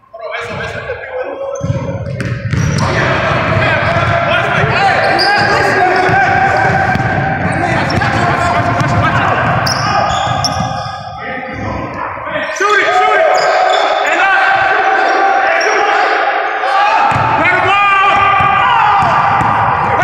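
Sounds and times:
echoing voices: 0:00.0 - 0:20.0
sneakers squeaking: 0:01.5 - 0:14.1.

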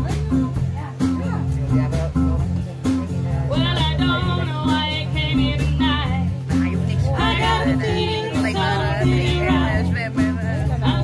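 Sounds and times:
repeating low bass line: 0:00.0 - 0:11.0
strummed acoustic guitar: 0:00.0 - 0:11.0
voices singing over music: 0:00.0 - 0:11.0.

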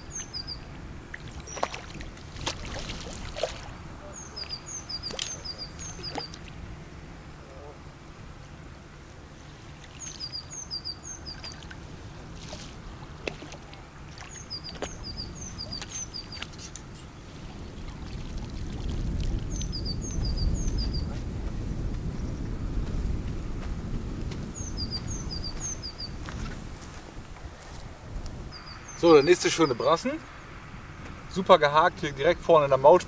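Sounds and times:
low rumble: 0:17.2 - 0:28.8.

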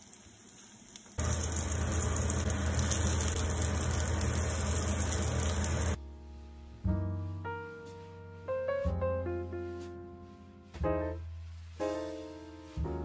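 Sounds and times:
tofu sizzling in oil: 0:00.0 - 0:06.0.

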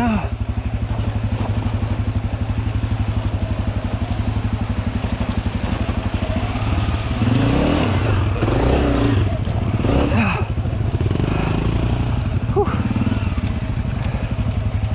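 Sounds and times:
dirt bike engine revving: 0:00.0 - 0:14.9.

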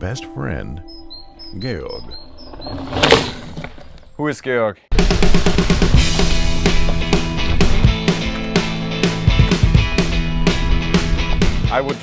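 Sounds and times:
mountain bike tyres whooshing: 0:02.2 - 0:04.1, 0:08.7 - 0:11.7.

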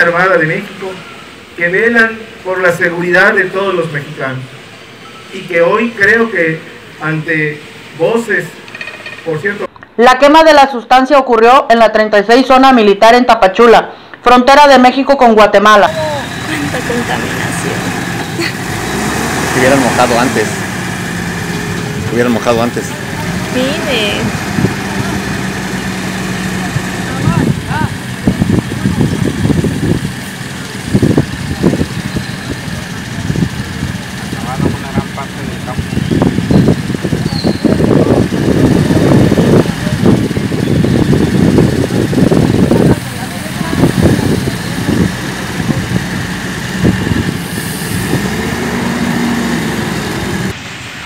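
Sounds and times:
truck engine running: 0:00.0 - 0:09.7, 0:15.7 - 0:51.0
indistinct voices talking: 0:15.6 - 0:50.6.

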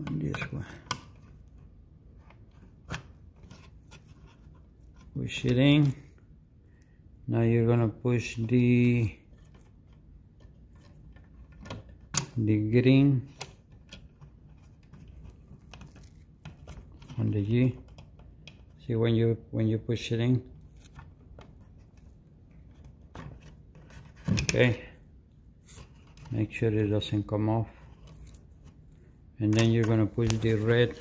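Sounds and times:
faint handling sounds: 0:00.0 - 0:31.0.

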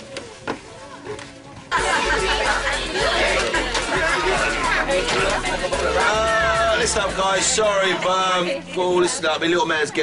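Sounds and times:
crowd chatter: 0:00.0 - 0:10.0
party music with low bass: 0:01.7 - 0:09.5.

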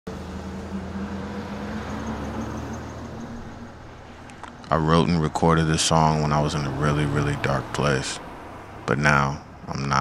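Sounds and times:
car engine hum: 0:00.1 - 0:10.0
road noise: 0:00.1 - 0:10.0.

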